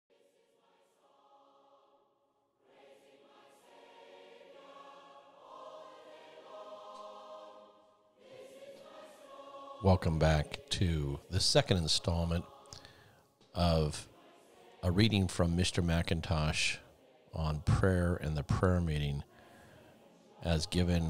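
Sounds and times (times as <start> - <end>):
choir singing held chords: 0.1 - 21.0.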